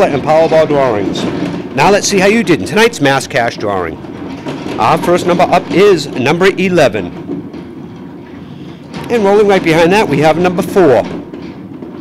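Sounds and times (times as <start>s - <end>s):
plastic balls tumbling in drum: 0.0s - 12.0s.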